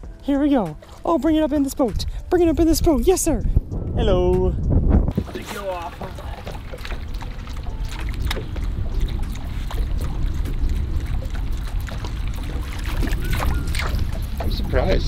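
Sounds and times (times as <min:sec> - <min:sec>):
wind buffeting microphone: 0:00.0 - 0:15.0
faint water splashing: 0:00.5 - 0:02.3, 0:05.1 - 0:15.0.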